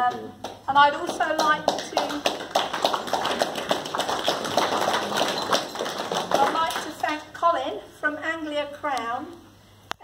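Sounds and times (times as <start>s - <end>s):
audience applauding: 1.4s - 7.2s.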